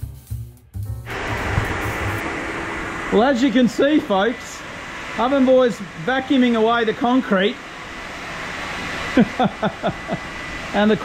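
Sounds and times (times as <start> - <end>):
shop vacuum running: 1.1 - 11.0
burst of laughter: 9.2 - 10.3.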